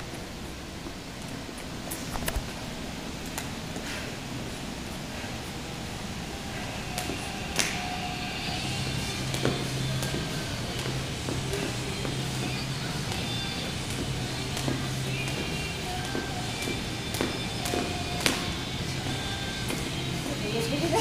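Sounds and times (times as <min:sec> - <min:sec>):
background music: 0:05.5 - 0:21.0
jump rope ticking on floor: 0:08.6 - 0:18.5.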